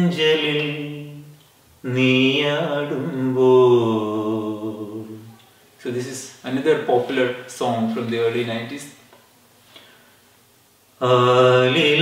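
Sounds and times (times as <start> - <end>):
man singing unaccompanied: 0.0 - 8.6, 11.0 - 12.0.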